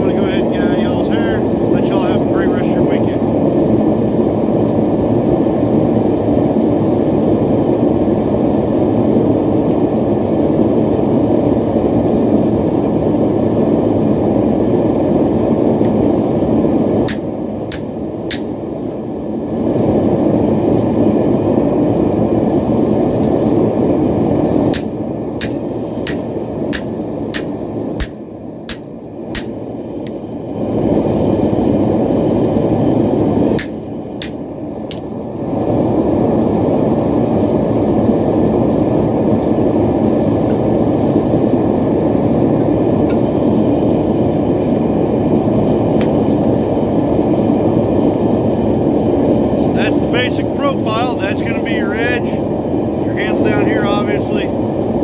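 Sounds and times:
mallet striking steel anvil: 0:17.1 - 0:18.5.

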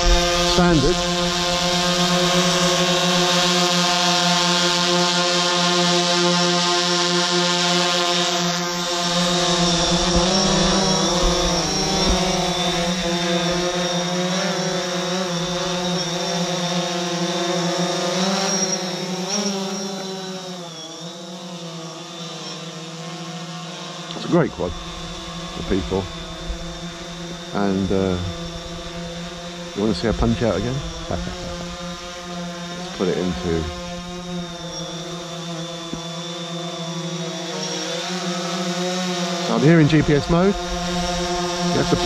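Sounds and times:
drone propellers buzzing: 0:00.0 - 0:42.0.

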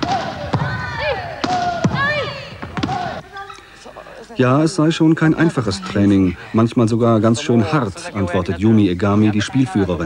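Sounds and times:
volleyball hits and slaps: 0:00.0 - 0:03.2
players shouting calls: 0:00.0 - 0:03.5.

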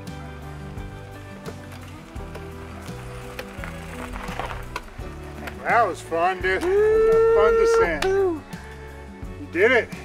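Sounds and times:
bass line: 0:00.0 - 0:10.0.

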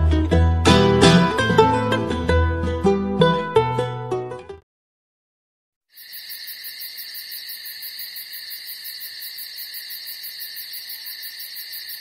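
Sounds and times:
insects chirping: 0:05.9 - 0:12.0.

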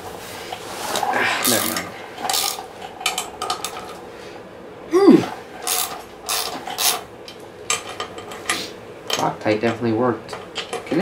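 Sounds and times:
socket ratchet clicking: 0:01.4 - 0:03.7, 0:05.7 - 0:07.0.

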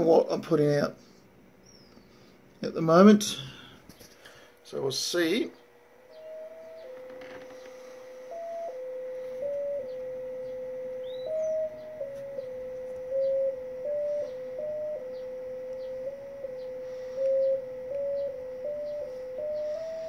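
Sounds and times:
digital-mode tone hopping pitch: 0:06.1 - 0:20.0.

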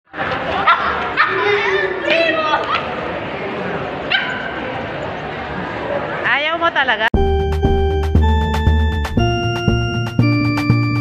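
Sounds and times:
small dog yipping: 0:04.1 - 0:04.6.

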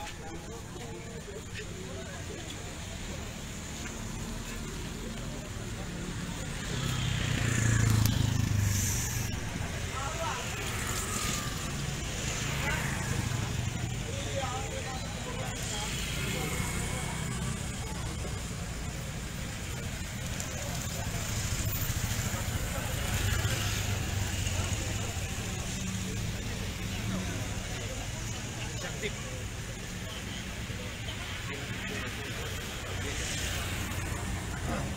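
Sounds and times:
indistinct crowd voices: 0:00.0 - 0:34.9
motorcycles passing: 0:00.0 - 0:34.9
road traffic passing: 0:00.0 - 0:34.9.

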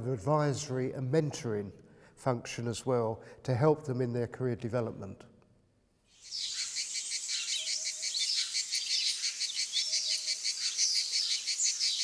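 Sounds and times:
small birds chirping and twittering: 0:06.1 - 0:12.0.

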